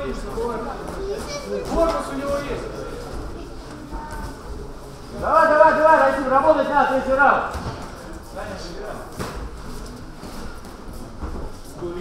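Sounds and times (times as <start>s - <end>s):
faint voices in a hall: 0.0s - 12.0s.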